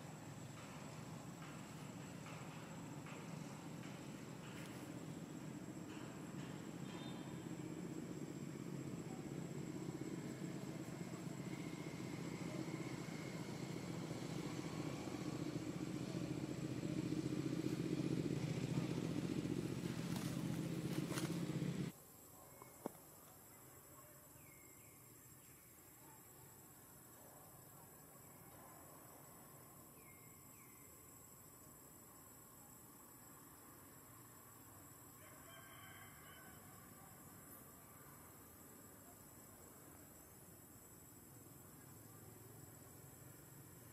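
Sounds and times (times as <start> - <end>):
faint outdoor ambience: 0.0 - 43.9.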